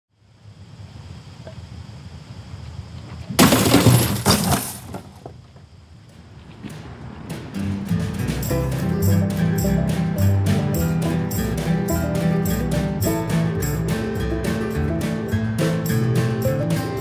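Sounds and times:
television screen glass shattering: 3.4 - 5.0
band music with acoustic instruments: 7.5 - 17.0.

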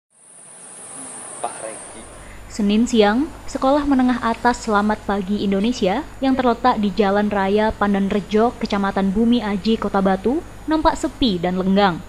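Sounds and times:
insects droning: 0.1 - 12.0.

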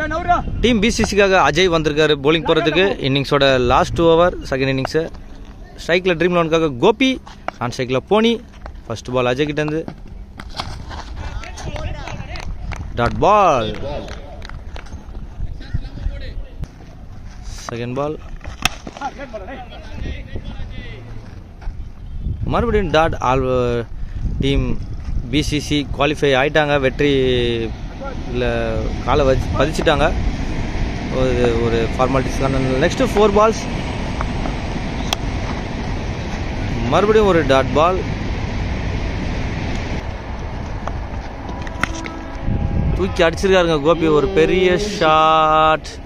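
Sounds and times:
wind rumbling on microphone: 0.0 - 46.0
players calling out: 41.4 - 45.8.

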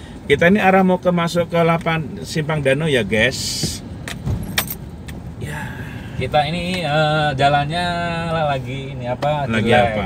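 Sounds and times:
engine and tyre rumble: 0.0 - 10.0
car rattles and knocks: 3.6 - 5.2.

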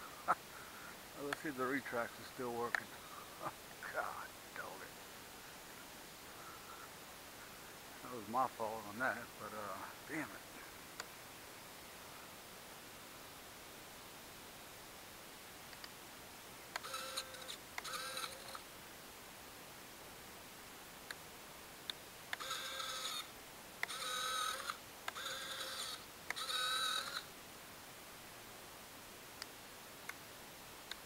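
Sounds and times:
servos whirring: 22.3 - 27.2.

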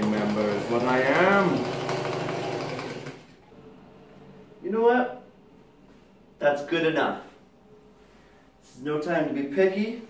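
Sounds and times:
sewing machine running: 0.0 - 3.4.

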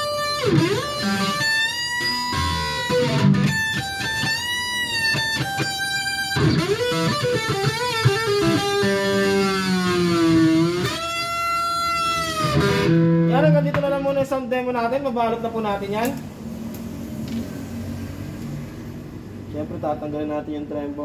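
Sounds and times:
electric guitar lead phrases: 0.0 - 14.3.

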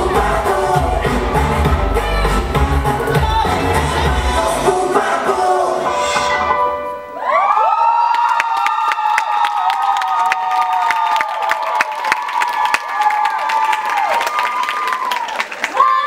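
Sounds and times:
stage music: 0.0 - 8.7
audience cheering and screaming: 7.0 - 16.0
scattered clapping: 8.3 - 15.9.

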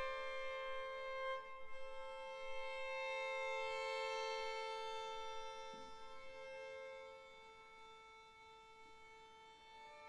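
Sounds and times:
violin and strings sustained notes: 0.0 - 10.0.

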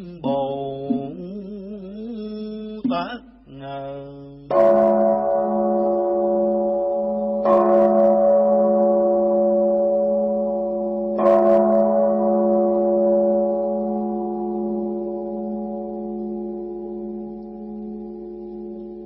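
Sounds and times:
bowl temple bell ringing: 4.5 - 19.0.

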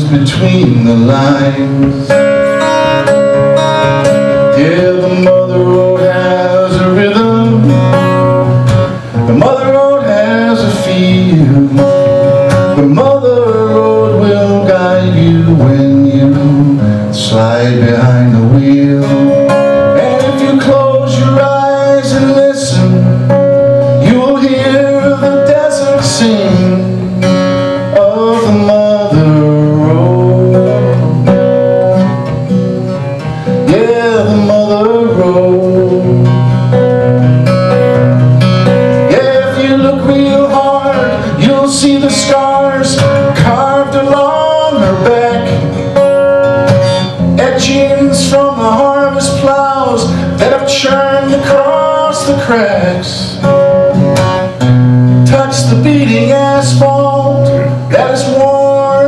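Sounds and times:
acoustic guitar strumming: 0.0 - 59.0
person singing: 38.9 - 45.9, 55.3 - 59.0.

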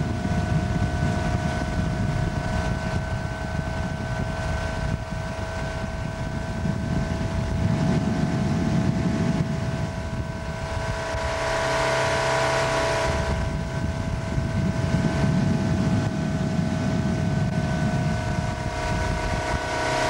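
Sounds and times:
boat engine whine: 0.0 - 20.0
rush of wind and water: 0.0 - 20.0.

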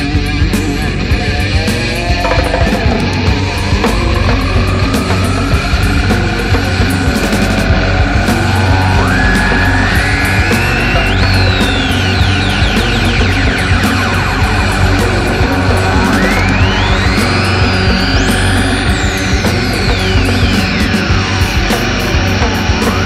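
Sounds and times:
punk rock band playing: 0.0 - 23.0.

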